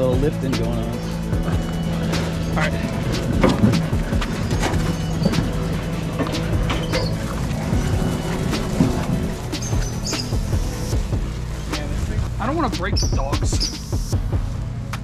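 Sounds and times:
background music with bass: 0.0 - 15.0
knocks and clicks: 3.1 - 10.5.

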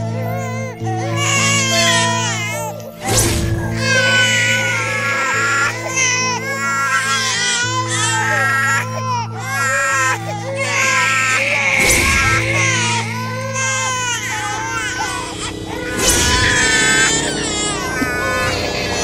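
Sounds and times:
infants crying: 0.0 - 19.0
low dramatic music drone: 0.0 - 19.0.

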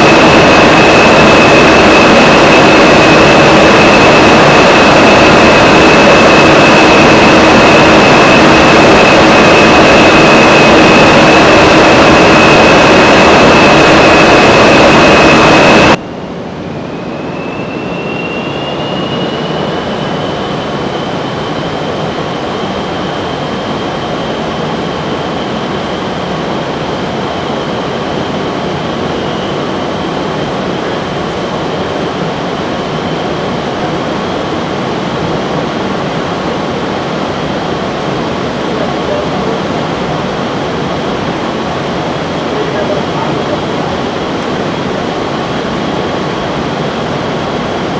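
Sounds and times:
high whine: 0.0 - 47.9
wind tunnel air rushing: 0.0 - 47.9.

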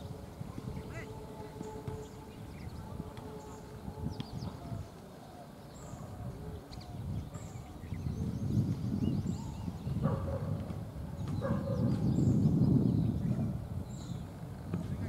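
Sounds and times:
birds chirping: 0.0 - 15.0.

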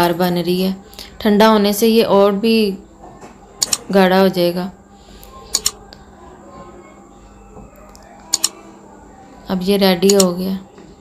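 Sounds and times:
sharp double clicks: 3.6 - 3.8, 5.5 - 5.8, 8.3 - 8.5.

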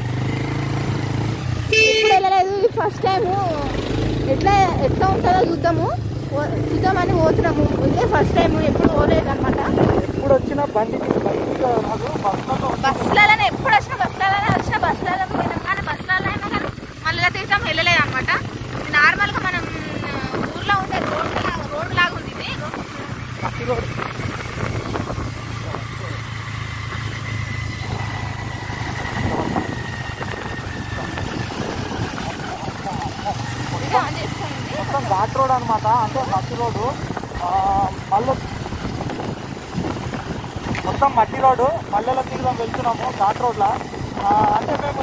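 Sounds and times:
motorcycle engine hum: 0.0 - 45.0
people talking: 1.9 - 23.9, 33.7 - 38.4, 40.8 - 45.0
wind buffeting microphone: 2.3 - 45.0.

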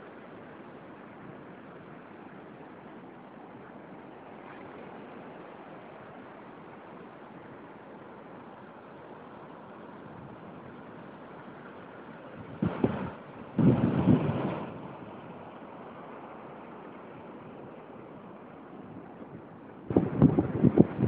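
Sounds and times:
wind gusts buffeting microphone: 12.4 - 15.3, 18.8 - 21.0
surf breaking on beach: 12.6 - 15.0.

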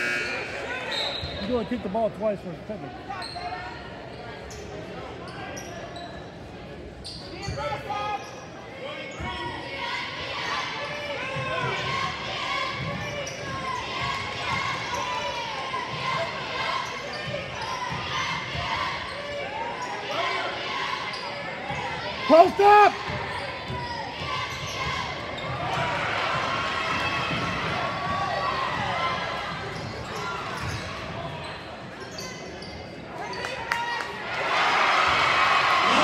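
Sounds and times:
spectators chattering: 0.0 - 36.0
shoes squeaking: 29.5 - 33.5.

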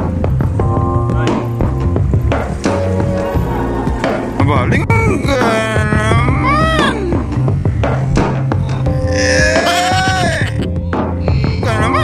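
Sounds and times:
background music: 0.0 - 12.0
comedy high-pitched cry effect: 8.9 - 10.6.

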